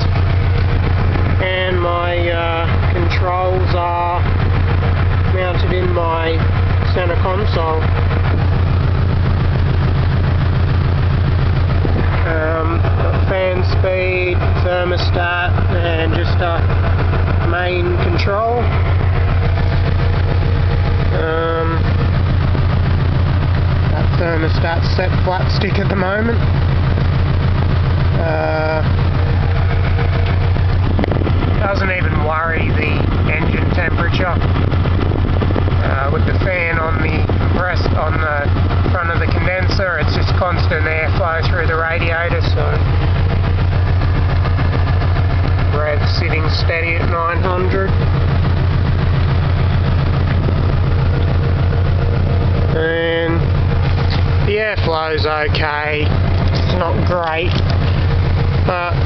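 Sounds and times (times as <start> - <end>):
air conditioning fan blowing: 0.0 - 59.0
car engine idling: 0.0 - 59.0.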